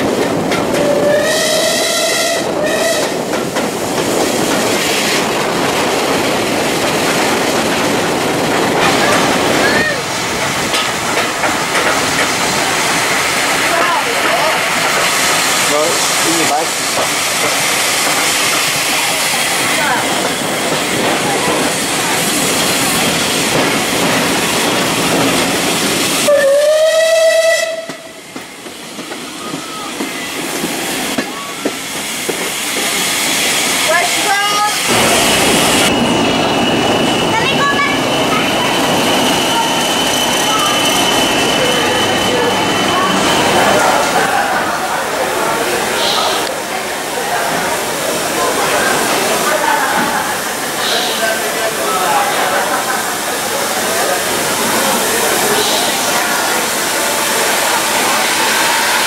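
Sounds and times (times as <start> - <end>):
train running noise: 0.0 - 59.0
steam locomotive whistle: 0.8 - 3.2, 26.2 - 28.2, 57.2 - 59.0
diesel locomotive high whine: 16.0 - 47.4
wheel squeals: 35.9 - 44.0.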